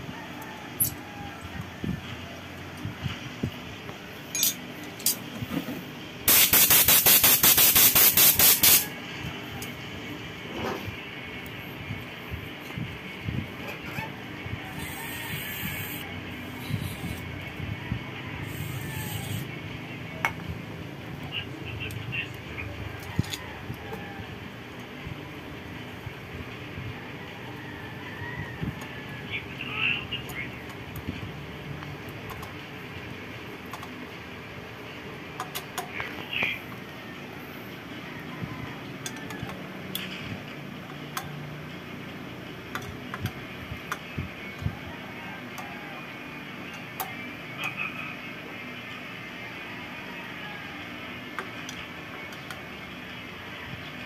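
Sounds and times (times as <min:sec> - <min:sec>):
wrench clinking on metal bolts: 0:04.3 - 0:05.2
rapid clicking burst: 0:06.3 - 0:08.8.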